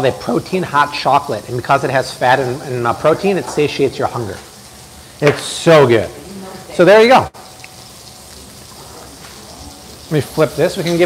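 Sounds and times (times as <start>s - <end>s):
steak sizzling in a hot pan: 0.0s - 11.0s.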